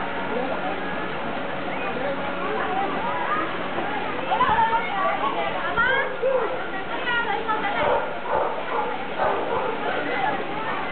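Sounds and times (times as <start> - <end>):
dog barking: 7.8 - 9.8.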